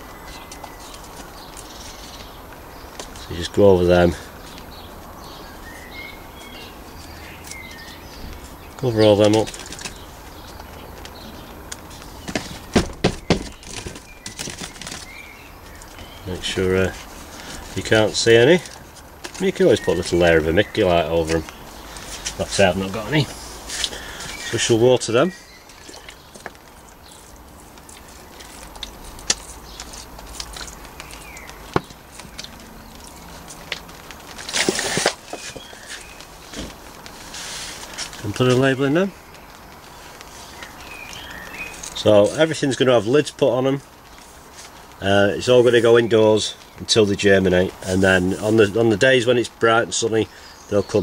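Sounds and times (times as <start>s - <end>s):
rustle: 0.0s - 51.0s
plastic pots knocking: 12.2s - 15.1s, 30.8s - 32.7s.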